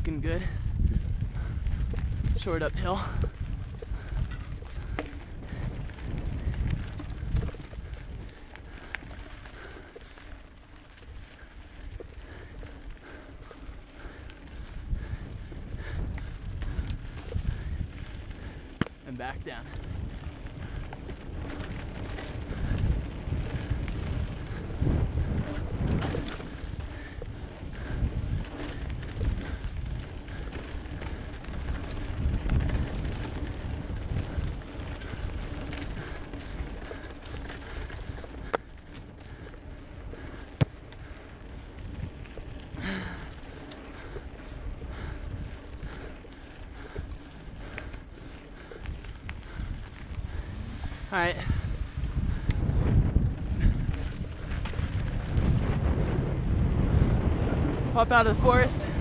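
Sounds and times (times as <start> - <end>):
bike rattling on dirt trail: 0.0 - 59.0
wind buffeting microphone: 0.0 - 59.0.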